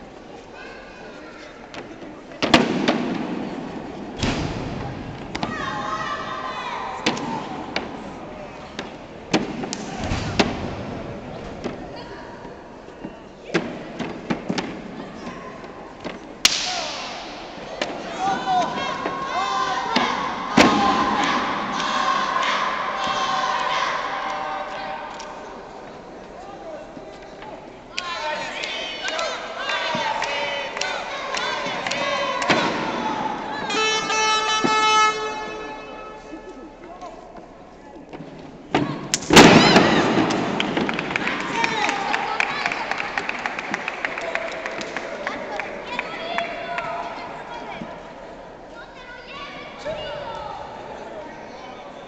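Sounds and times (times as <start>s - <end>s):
crowd shouting and cheering: 16.6s - 25.8s, 27.9s - 36.2s, 38.8s - 48.1s.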